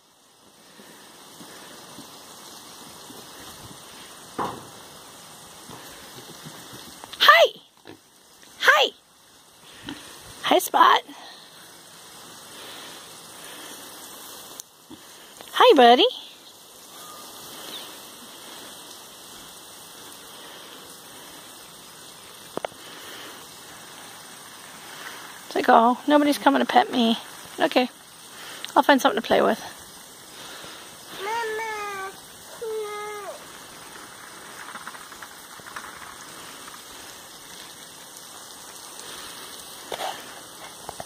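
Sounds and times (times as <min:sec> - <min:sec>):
outdoor background hiss: 0:00.0 - 0:41.0.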